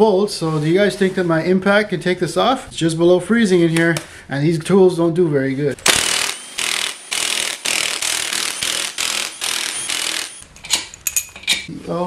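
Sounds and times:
impact wrench hammering: 5.8s - 11.3s.

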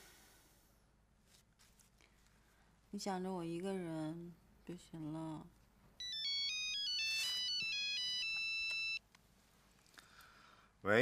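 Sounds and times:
mobile phone ringtone: 6.0s - 9.0s.

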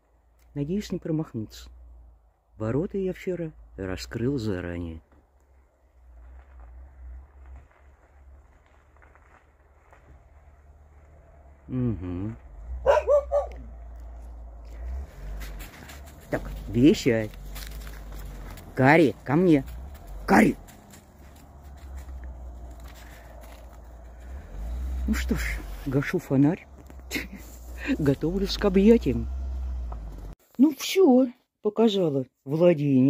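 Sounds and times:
car arriving low rumble: 3.4s - 30.4s
soft footsteps on snow: 5.1s - 11.6s, 13.5s - 30.4s.

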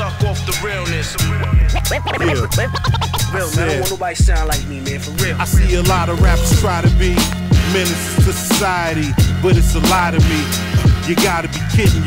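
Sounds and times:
hip hop beat: 0.0s - 12.0s
turntable scratching: 1.4s - 8.4s.

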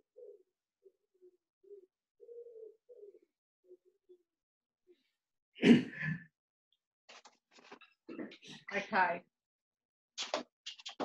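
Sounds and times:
bird cooing: 0.0s - 4.2s.

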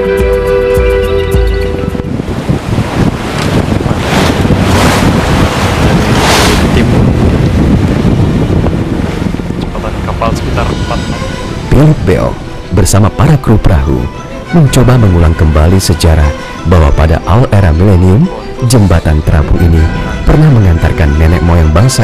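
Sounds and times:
music: 0.0s - 2.3s, 9.5s - 22.0s
sea rushing along hull: 0.0s - 22.0s
wind buffeting microphone: 1.4s - 22.0s.

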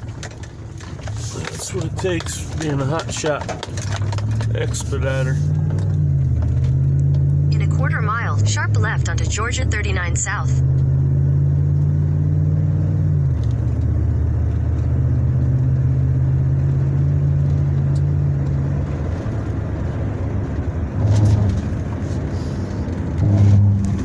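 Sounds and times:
road noise: 0.0s - 24.0s
truck engine droning: 0.0s - 24.0s.

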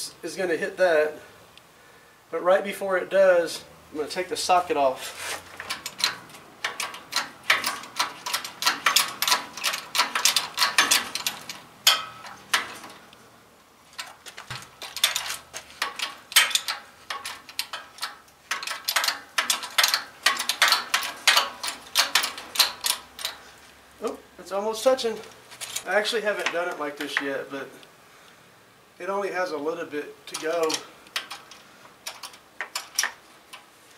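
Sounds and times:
hand pump metallic clicks: 5.1s - 13.1s, 14.0s - 24.2s, 25.2s - 27.3s, 30.3s - 33.7s.

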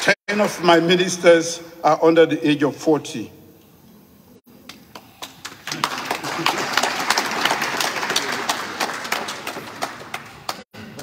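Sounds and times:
audience applauding: 4.7s - 10.7s.

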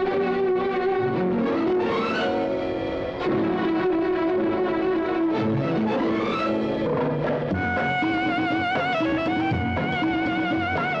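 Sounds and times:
orchestral film music: 0.0s - 11.0s.

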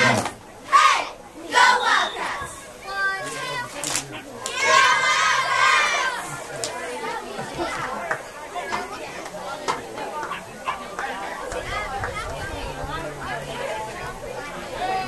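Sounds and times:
children shouting outdoors: 0.0s - 9.2s.

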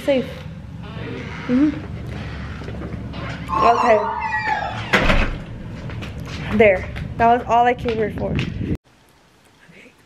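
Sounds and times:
door shutting: 0.8s - 5.5s
voice falling in pitch: 3.5s - 4.9s.

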